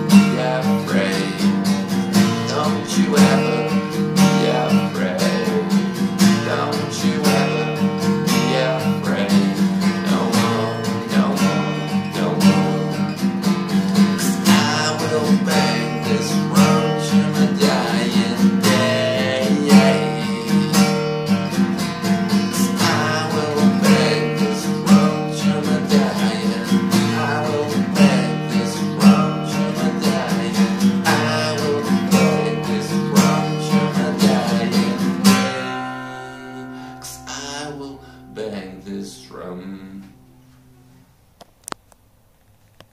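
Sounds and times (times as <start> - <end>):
man singing: 0.0 - 13.3, 13.9 - 21.6, 22.3 - 40.2
acoustic guitar strumming: 0.0 - 42.0.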